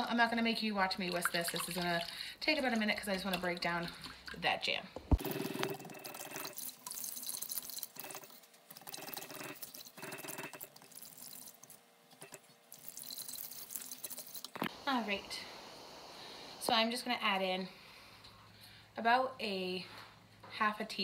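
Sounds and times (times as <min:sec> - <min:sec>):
whisk swishing liquid in pot: 0:05.2 - 0:14.6.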